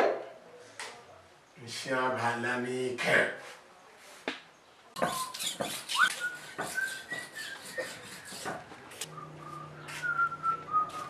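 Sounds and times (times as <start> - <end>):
man whistling a tune: 6.0 - 7.9, 9.1 - 11.0.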